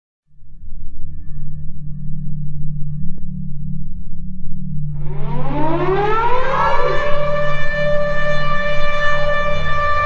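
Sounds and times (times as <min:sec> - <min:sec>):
low continuous drone: 0:00.3 - 0:10.0
siren-like tone winding up: 0:04.9 - 0:10.0.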